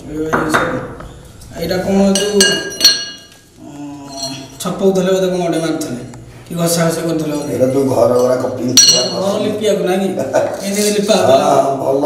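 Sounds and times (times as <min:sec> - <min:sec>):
metal tool clinking on stone: 0:02.2 - 0:03.4, 0:08.8 - 0:09.2.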